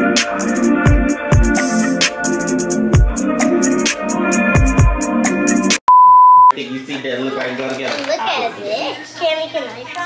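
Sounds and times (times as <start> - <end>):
test tone beep: 5.9 - 6.5
voices talking in a room: 6.5 - 10.0.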